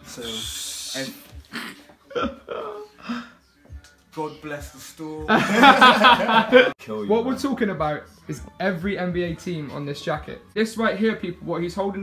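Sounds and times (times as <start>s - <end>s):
man laughing: 1.5s - 2.9s, 5.3s - 6.8s.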